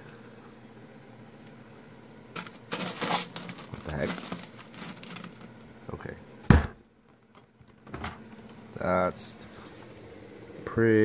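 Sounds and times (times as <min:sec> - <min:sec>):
plastic bag crinkling: 0:02.4 - 0:05.7.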